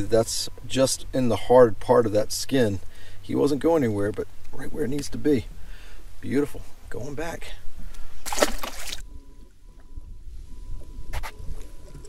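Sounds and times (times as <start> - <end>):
fish splashing into water: 8.2 - 9.0
low wind rumble: 8.9 - 12.0.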